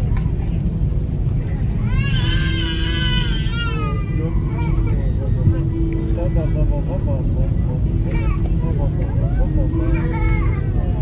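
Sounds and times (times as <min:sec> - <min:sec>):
low rumble of aircraft cabin: 0:00.0 - 0:11.0.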